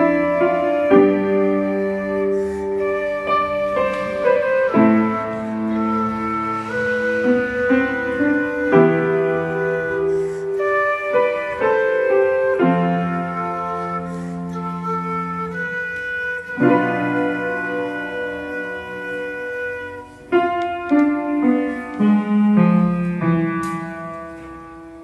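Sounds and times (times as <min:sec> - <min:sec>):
piano chords: 0:00.0 - 0:25.0
quena flute melody: 0:00.0 - 0:25.0.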